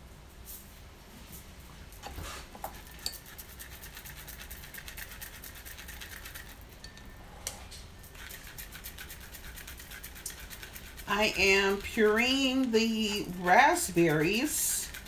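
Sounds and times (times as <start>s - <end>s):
spoon scraping through a strainer: 2.1s - 7.2s, 8.0s - 15.0s.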